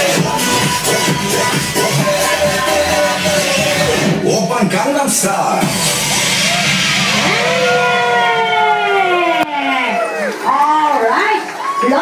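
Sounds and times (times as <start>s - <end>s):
rush of noise: 5.6s - 9.0s.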